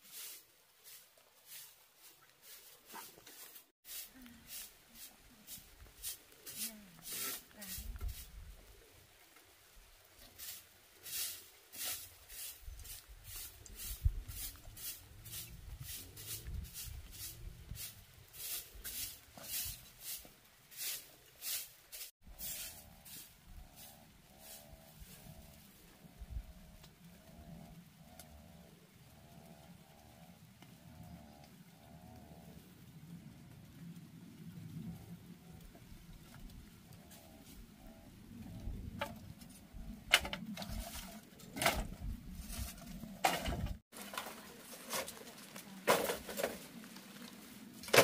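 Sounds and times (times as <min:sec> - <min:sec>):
broom sweeping dirt floor: 0:00.0 - 0:25.8, 0:38.6 - 0:48.0.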